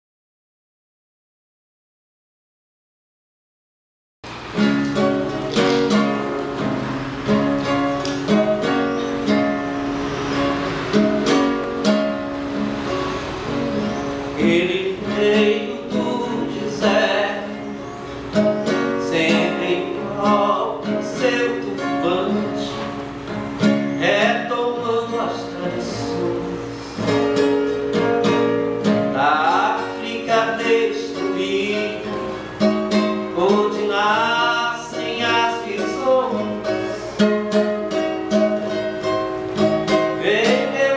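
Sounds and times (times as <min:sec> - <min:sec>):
acoustic guitar strumming: 0:04.2 - 0:40.9
person singing: 0:14.2 - 0:17.9, 0:18.7 - 0:23.0, 0:23.9 - 0:27.1, 0:29.1 - 0:32.4, 0:33.0 - 0:37.4, 0:40.1 - 0:40.9.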